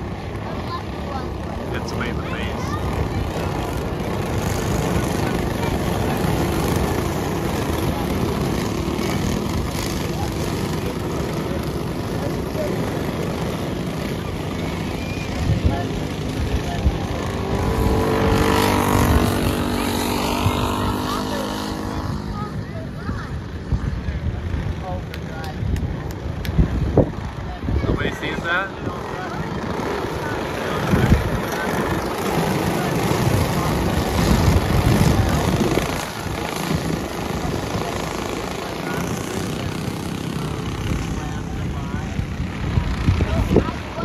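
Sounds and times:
go-kart engines buzzing: 0.0 - 44.0.

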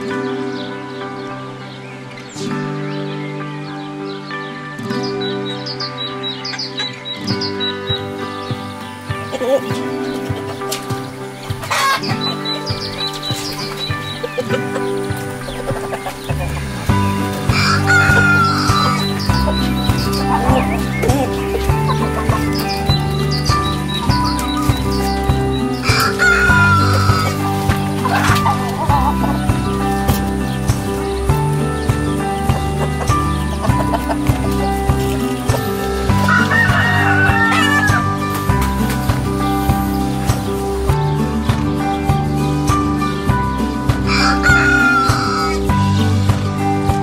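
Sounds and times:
background music: 0.0 - 47.0
chickens clucking: 5.1 - 47.0
rooster crowing: 17.4 - 19.2, 25.8 - 28.9, 36.1 - 38.2, 44.1 - 45.6.

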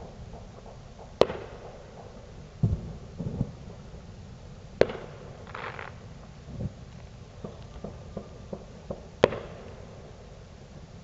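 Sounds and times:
firecracker cracks: 0.0 - 3.9, 4.8 - 6.1, 6.9 - 10.2
fireworks booming: 0.0 - 11.0.

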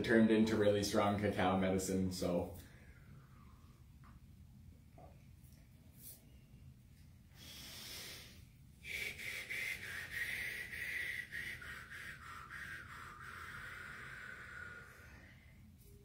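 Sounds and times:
person breathing deeply: 7.3 - 16.0.

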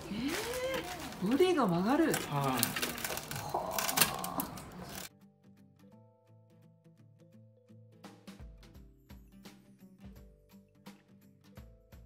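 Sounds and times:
rustling and clicking handling noise: 0.0 - 5.1
quiet background music: 0.0 - 12.0.

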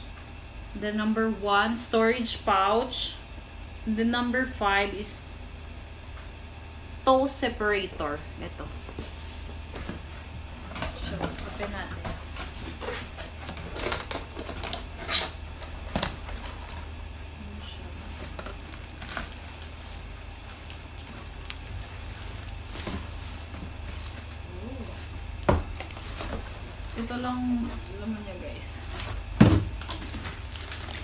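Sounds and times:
steady low hum: 0.0 - 31.0
plastic rustling: 8.8 - 16.9, 17.7 - 31.0
cardboard flaps scraping: 8.9 - 16.6.

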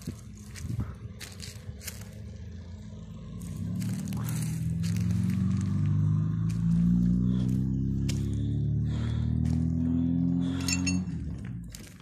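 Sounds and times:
footsteps crunching on gravel: 0.0 - 12.0
low drone rising in pitch: 0.0 - 12.0.

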